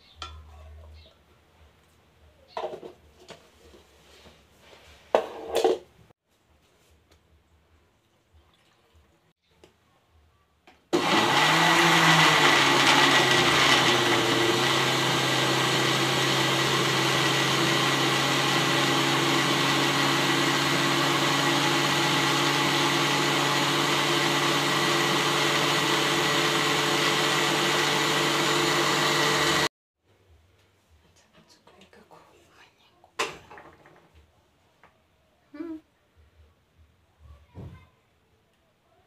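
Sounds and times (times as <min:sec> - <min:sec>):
blender running: 0:10.9 - 0:29.7.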